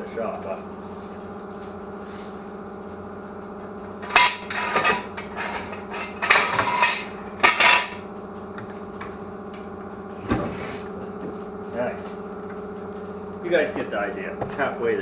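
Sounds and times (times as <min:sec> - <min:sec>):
steady hum: 0:00.0 - 0:15.0.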